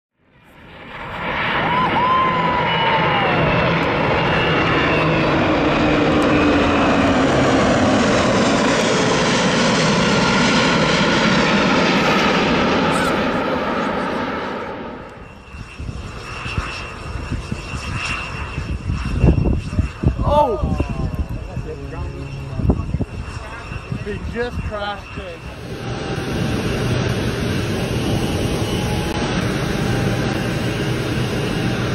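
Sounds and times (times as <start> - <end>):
jet aircraft roar: 0.2 - 31.9
uneven engine and wind noise: 2.6 - 31.9.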